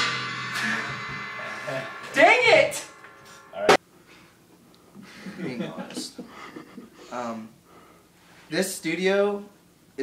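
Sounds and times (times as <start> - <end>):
cymbals crashing and ringing: 0.0 - 3.8
low drum resonance: 0.0 - 3.8.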